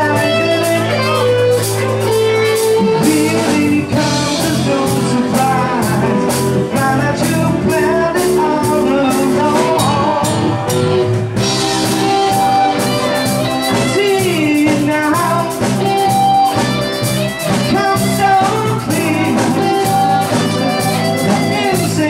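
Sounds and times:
bass guitar: 0.0s - 22.0s
electric guitar: 0.0s - 22.0s
person singing: 0.0s - 22.0s
steady drum beat: 0.0s - 22.0s.

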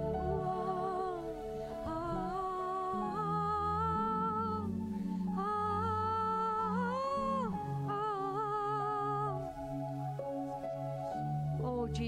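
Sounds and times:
woman singing into a microphone: 0.0s - 9.5s, 11.6s - 12.0s
soft low accompaniment: 0.0s - 12.0s.

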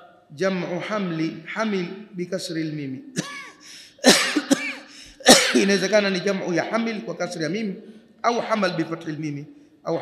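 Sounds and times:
man clearing his throat: 3.2s - 5.8s
man coughing: 3.2s - 5.8s.

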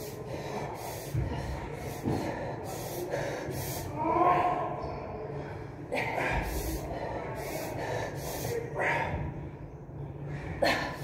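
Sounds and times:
hissing breaths: 0.0s - 4.0s, 5.4s - 9.2s
woman breathing hard: 0.0s - 4.0s, 5.4s - 9.3s.

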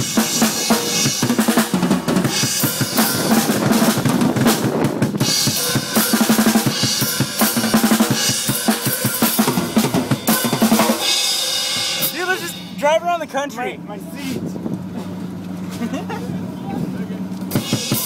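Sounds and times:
fast drum solo: 0.0s - 13.1s, 17.5s - 18.0s.

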